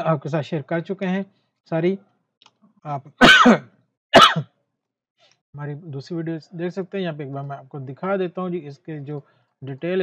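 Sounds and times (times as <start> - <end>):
man clearing throat: 3.2 - 3.6, 4.2 - 4.4.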